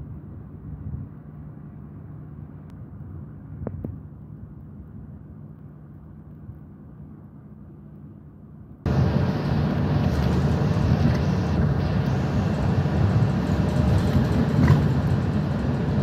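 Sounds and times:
bus engine and road noise: 0.0s - 16.0s
muffled street ambience: 0.0s - 16.0s.

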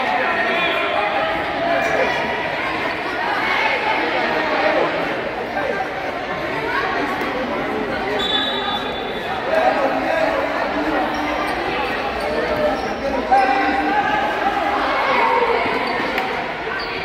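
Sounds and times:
echoing voices in a gymnasium: 0.0s - 17.0s.

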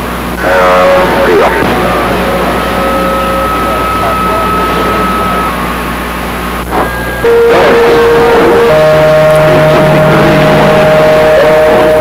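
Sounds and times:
radio band noise hiss: 0.0s - 12.0s
garbled radio voices: 0.4s - 12.0s
heterodyne whistle: 1.9s - 5.9s.

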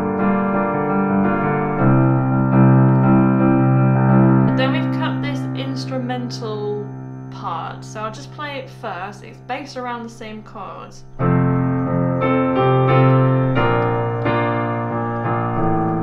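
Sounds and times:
piano chords: 0.0s - 16.0s
person speaking: 4.5s - 11.2s.

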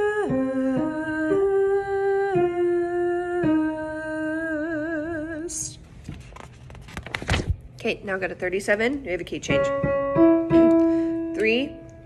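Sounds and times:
woman singing long held notes: 0.0s - 5.8s.

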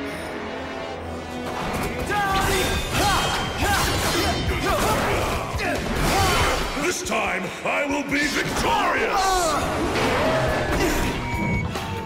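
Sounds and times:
dramatic background music: 0.0s - 12.0s
blades clashing: 1.3s - 7.2s.

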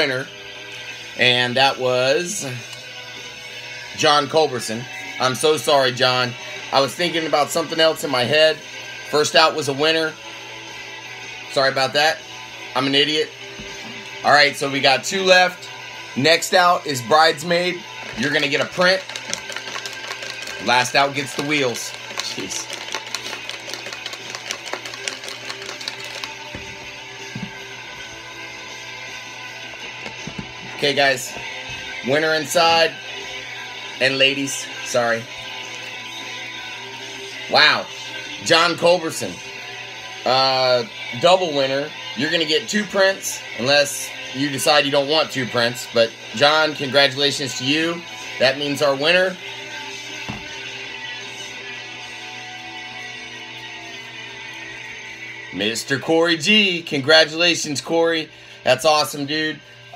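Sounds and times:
background guitar music: 16.2s - 36.2s
plastic container rattling: 18.1s - 26.7s.

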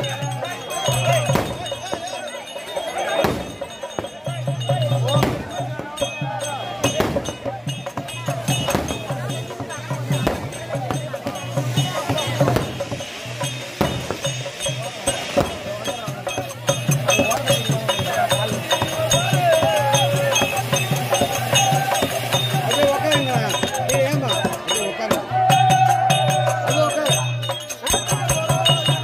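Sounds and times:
crowd voices: 0.0s - 29.0s
firework fountain crackling: 0.0s - 29.0s
repeating drum beat: 0.0s - 29.0s
wavering melody: 0.0s - 29.0s.

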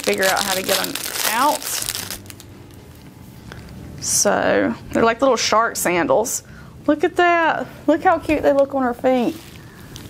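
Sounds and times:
plastic bag rustling: 0.0s - 3.0s, 8.4s - 10.0s.

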